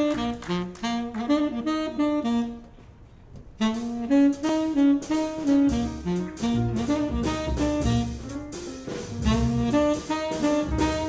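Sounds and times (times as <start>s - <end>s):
tenor saxophone playing jazz: 0.0s - 11.0s
rhythm section: 3.6s - 11.0s.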